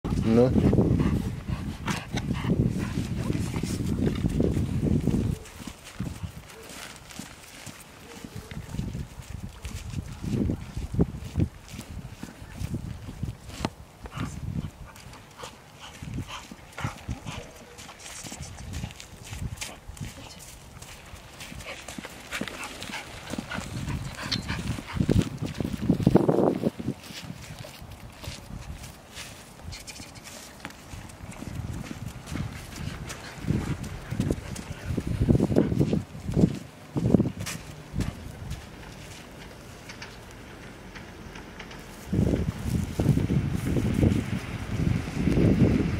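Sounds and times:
footsteps on wet dirt road: 0.1 - 45.9.

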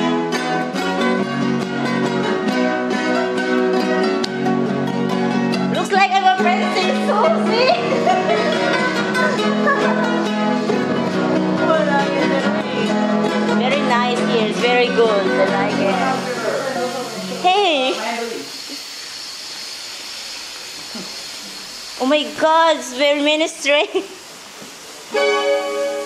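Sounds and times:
ukulele and guitar strumming: 0.0 - 17.4, 25.1 - 26.0.

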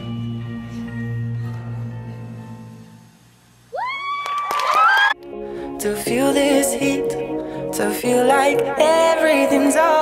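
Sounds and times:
person shouting woo: 3.7 - 5.2
audience cheering and clapping: 3.8 - 5.2.

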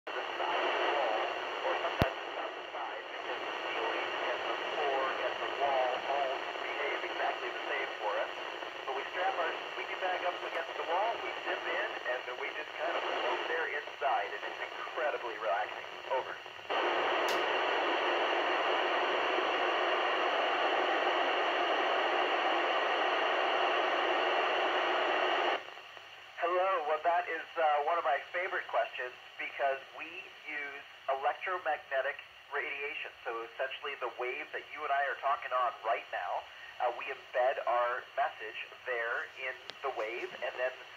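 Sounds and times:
unclear voice over radio: 0.1 - 20.6, 26.4 - 40.9
radio noise: 0.1 - 40.9.

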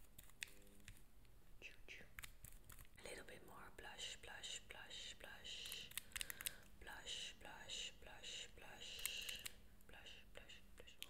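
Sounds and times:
soft whispering: 1.5 - 2.3, 3.0 - 11.0.

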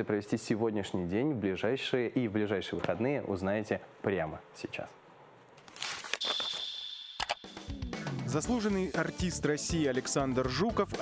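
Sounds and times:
high steady ringing tone: 6.2 - 7.7.

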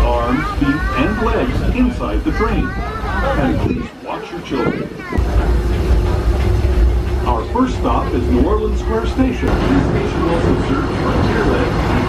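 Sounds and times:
train car rumbling on track: 0.0 - 12.0.

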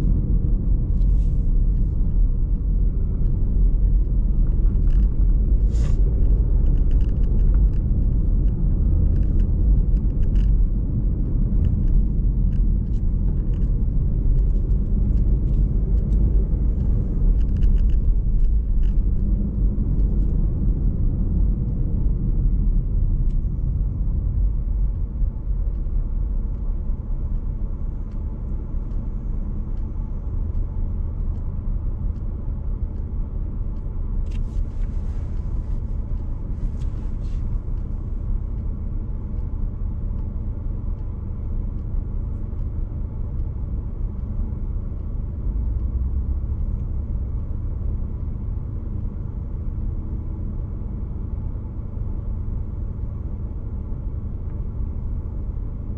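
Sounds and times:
car engine rumble: 0.0 - 55.9
road noise: 0.0 - 55.9.

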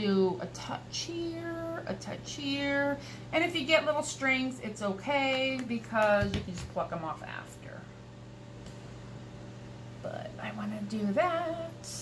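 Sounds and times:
appliance or fan humming: 0.0 - 12.0.

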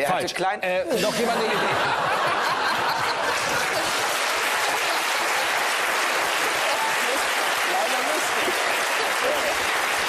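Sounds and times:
studio audience applauding: 1.4 - 10.0.

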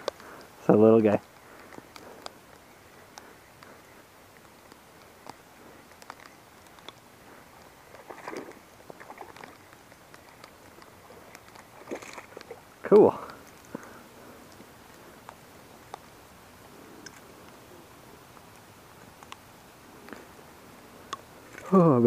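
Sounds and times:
rustle through grass: 0.0 - 22.0
fish splashing at surface: 8.0 - 9.6, 11.7 - 12.6.

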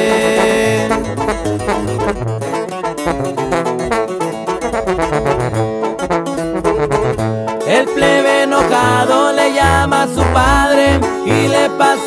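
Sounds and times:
steady bass line: 0.0 - 11.8
fast plucked guitar runs: 0.0 - 12.0.

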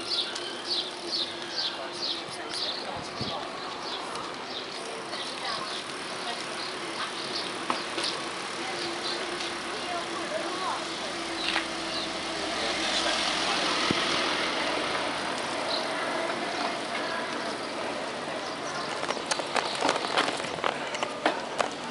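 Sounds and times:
bicycle rolling on pavement: 0.0 - 21.9
people's voices: 0.0 - 21.9
sharp clicks and rattles: 18.6 - 21.9.

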